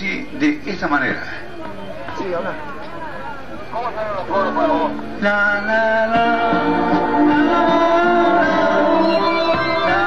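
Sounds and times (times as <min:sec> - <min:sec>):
live band playing: 0:04.4 - 0:10.0
person singing: 0:04.4 - 0:10.0.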